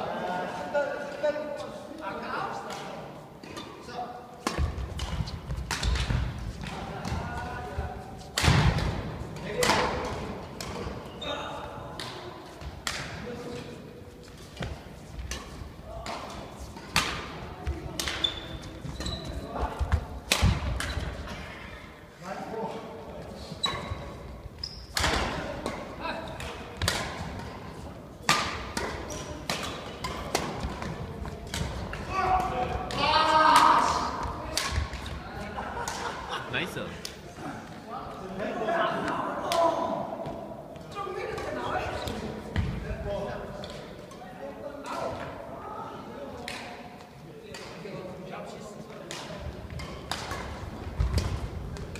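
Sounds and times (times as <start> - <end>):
sneakers squeaking: 3.4 - 7.2, 10.0 - 15.8, 16.4 - 21.6, 23.4 - 32.6
racket striking shuttlecock: 4.4 - 7.2, 14.6 - 17.4, 19.8 - 21.0, 24.9 - 27.6, 28.2 - 35.2, 49.1 - 51.9.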